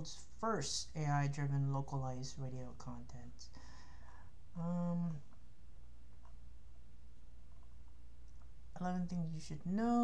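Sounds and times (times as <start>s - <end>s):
person speaking: 0.0s - 3.6s, 4.5s - 5.4s, 8.4s - 10.0s
low background hum: 0.0s - 10.0s.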